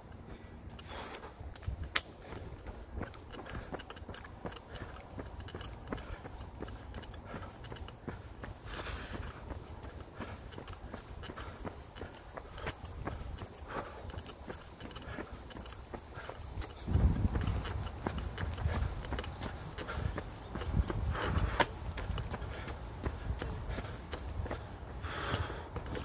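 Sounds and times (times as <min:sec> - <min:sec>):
jogging footsteps on pavement: 0:00.0 - 0:26.0
heavy breathing: 0:00.1 - 0:26.0.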